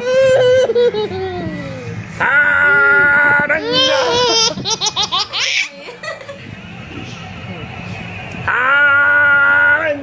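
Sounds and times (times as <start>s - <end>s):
toddler laughing: 0.0s - 1.8s, 2.7s - 5.9s.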